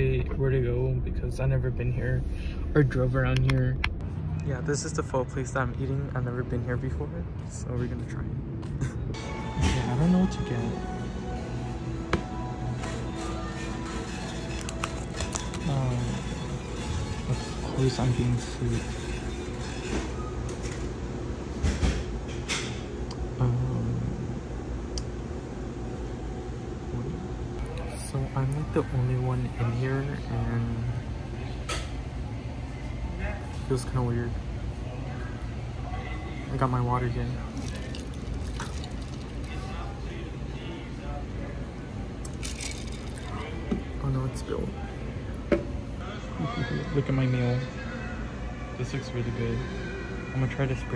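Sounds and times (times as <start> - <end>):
low hum: 0.0 - 28.7
low indoor room rumble: 0.0 - 50.9.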